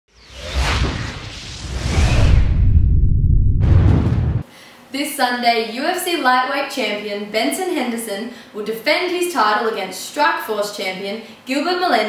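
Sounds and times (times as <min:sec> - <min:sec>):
logo intro whoosh: 0:00.1 - 0:04.4
deep rumble: 0:00.3 - 0:04.4.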